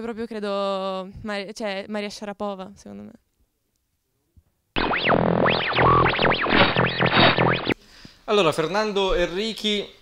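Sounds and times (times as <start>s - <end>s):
synthesizer music with pitch sweeps: 4.8s - 7.8s.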